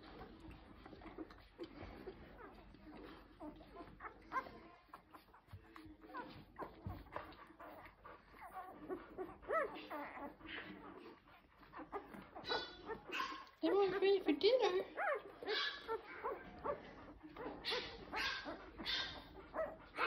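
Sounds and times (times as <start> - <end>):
puppies squeaking and whimpering: 0.0 - 20.0
puppy whining: 0.0 - 20.0.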